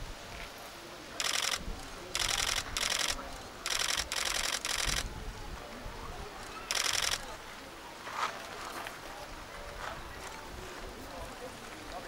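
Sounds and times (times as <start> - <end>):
camera shutters clicking rapidly: 1.2 - 5.1, 6.4 - 7.3.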